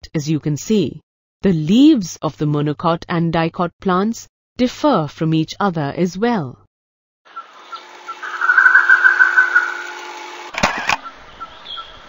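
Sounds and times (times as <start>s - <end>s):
insects chirping: 7.3s - 10.0s.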